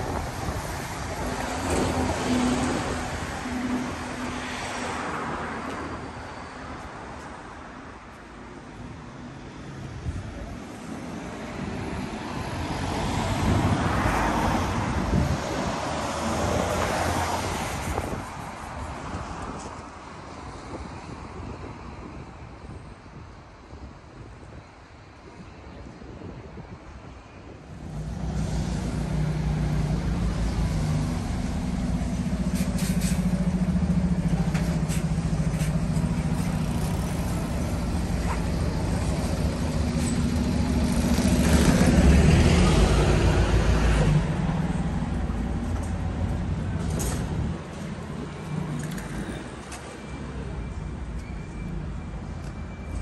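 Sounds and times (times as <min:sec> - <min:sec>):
general traffic noise: 0:00.0 - 0:53.0
bus engine humming: 0:27.8 - 0:53.0.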